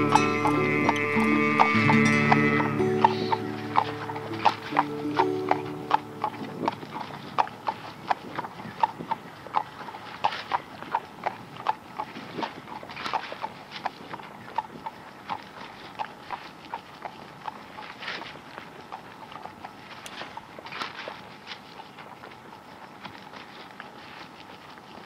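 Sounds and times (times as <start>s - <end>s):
held instrumental chord: 0.0s - 7.4s
horse hooves clip-clopping: 0.0s - 25.0s.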